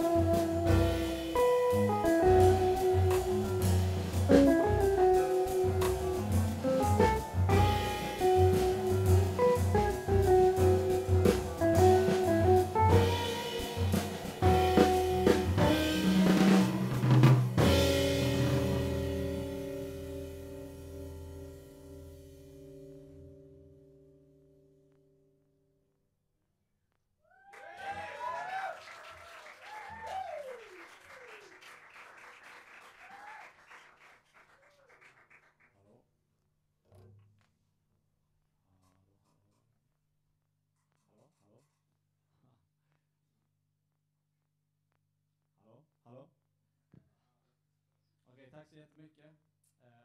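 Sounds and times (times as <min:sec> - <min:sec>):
jazz quartet playing: 0:00.0 - 0:23.0
faint audience clapping and whoops: 0:27.3 - 0:35.5.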